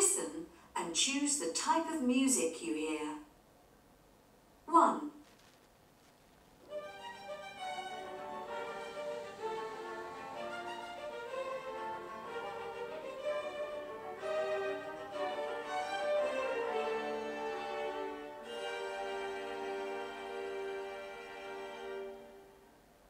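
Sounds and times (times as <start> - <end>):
classical music led by violin: 6.6 - 22.6.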